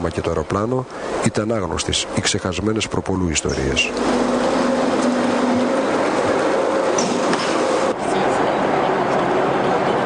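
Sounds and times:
low steady hum: 0.0s - 9.1s
machinery rumble and hiss: 0.0s - 10.0s.

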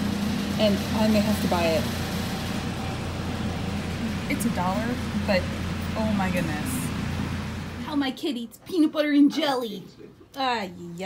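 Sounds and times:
laundry machines humming and rushing: 0.0s - 8.1s.

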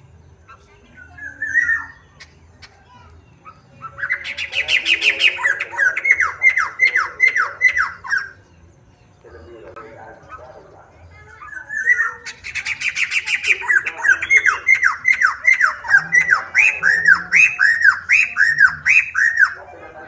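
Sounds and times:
laughingthrush whistled song: 0.5s - 2.8s, 3.4s - 8.4s, 11.4s - 19.7s.

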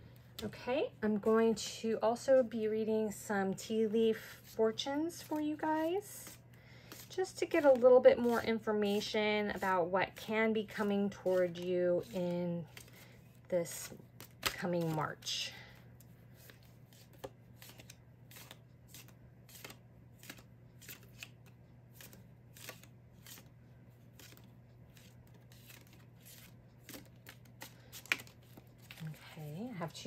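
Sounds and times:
cards being shuffled: 4.2s - 15.3s, 16.0s - 30.0s.

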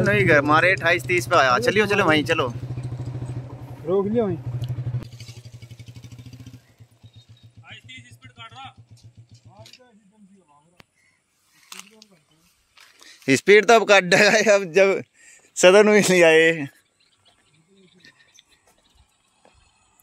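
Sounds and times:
men's voices: 0.0s - 2.6s, 13.1s - 16.8s
motorcycle engine idling: 0.0s - 10.4s.

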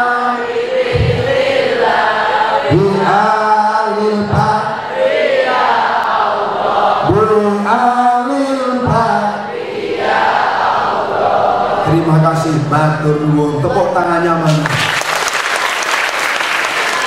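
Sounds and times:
voices chanting devotional song: 0.0s - 14.6s.

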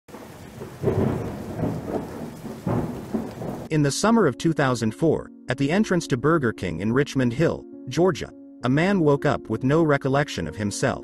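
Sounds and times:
rain hissing: 0.1s - 3.7s
thunder rumble: 0.1s - 3.7s.

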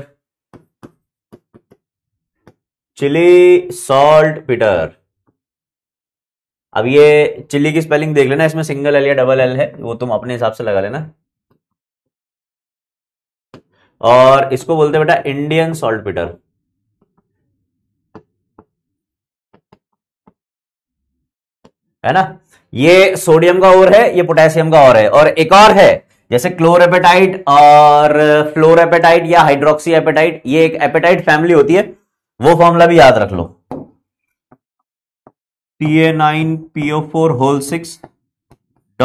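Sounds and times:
handwriting: 0.5s - 2.6s, 18.6s - 20.4s
pen tapping on writing surface: 0.5s - 2.7s, 19.5s - 20.4s, 33.7s - 33.9s.

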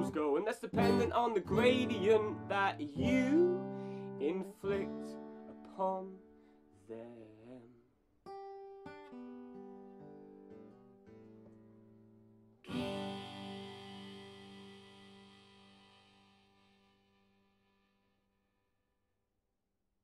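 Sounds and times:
guitar picked notes and chord: 0.0s - 6.7s, 8.3s - 18.3s.

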